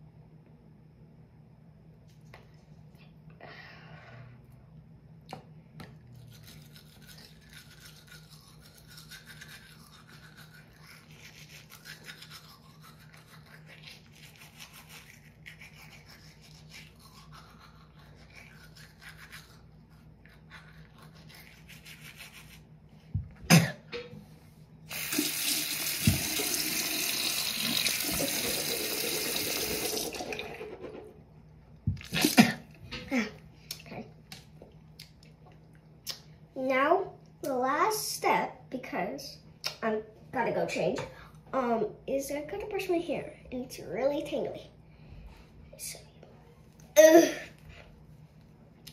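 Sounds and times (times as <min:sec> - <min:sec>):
toothbrush scrubbing teeth: 0:06.1 - 0:22.7
tap running into sink: 0:25.9 - 0:26.6.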